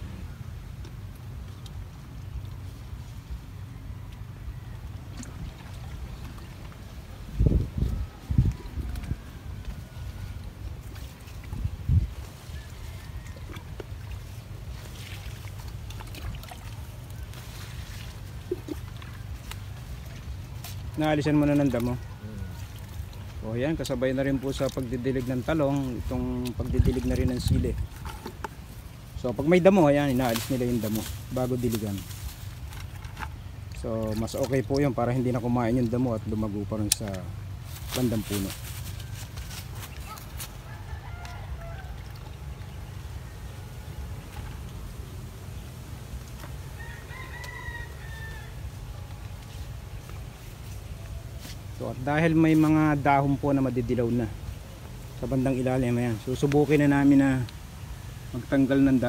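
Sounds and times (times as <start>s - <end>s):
low steady rumble: 0.0s - 59.0s.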